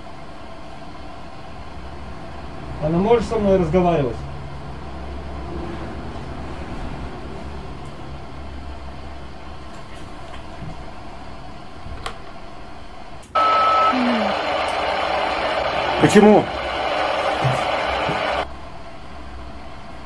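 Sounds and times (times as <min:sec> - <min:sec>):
short high beep: 0:13.4 - 0:14.5
loud radio static: 0:13.4 - 0:18.4.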